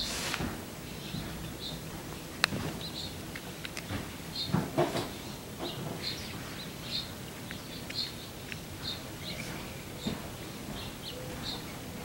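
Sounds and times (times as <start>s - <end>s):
songbird chirping: 0.8s - 12.0s.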